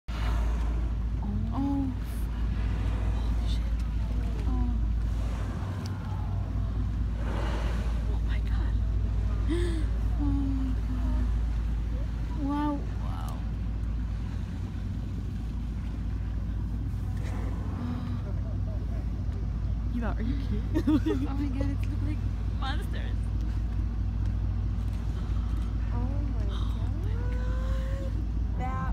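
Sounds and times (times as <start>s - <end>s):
boat engine rumbling: 0.0s - 28.9s.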